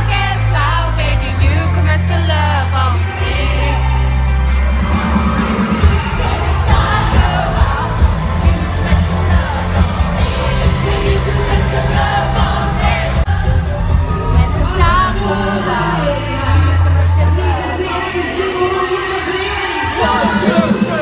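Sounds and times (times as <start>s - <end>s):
crowd noise: 0.0s - 21.0s
live pop band with singer: 0.0s - 21.0s
pounding bass beat: 4.8s - 16.2s.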